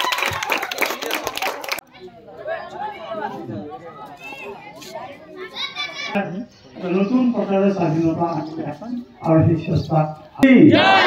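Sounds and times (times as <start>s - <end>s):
indistinct chatter: 0.8s - 9.8s.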